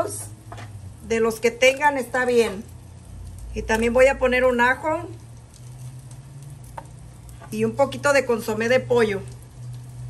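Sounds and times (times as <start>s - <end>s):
low steady hum: 0.0s - 10.0s
rice sizzling in oil: 0.0s - 10.0s.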